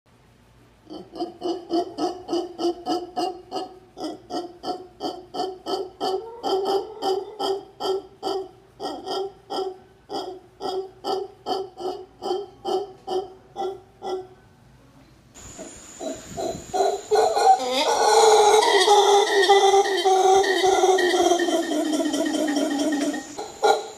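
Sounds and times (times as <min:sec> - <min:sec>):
howler monkey calling: 0:00.8 - 0:14.5, 0:15.4 - 0:23.9.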